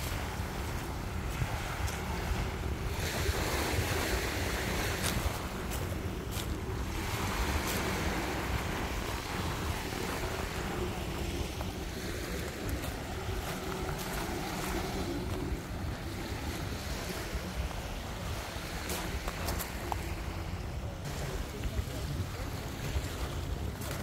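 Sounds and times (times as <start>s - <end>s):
small waves washing onto beach: 0.0s - 24.0s
wind buffeting microphone: 0.0s - 24.0s.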